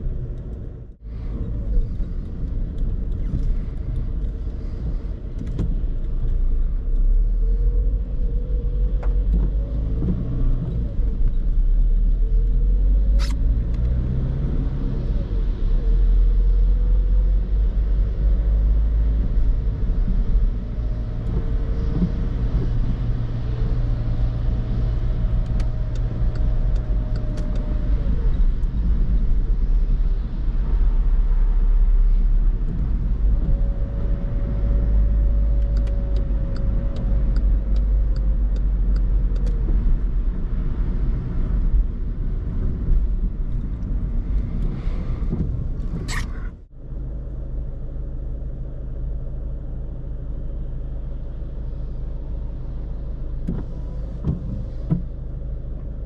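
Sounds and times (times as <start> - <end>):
tyre noise on wet road: 0.0 - 46.6
car engine rumble: 0.0 - 56.0.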